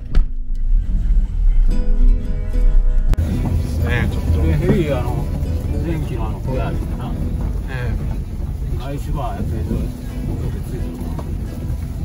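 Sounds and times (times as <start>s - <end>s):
car rumbling over rough track: 0.0s - 12.0s
background music: 0.3s - 12.0s.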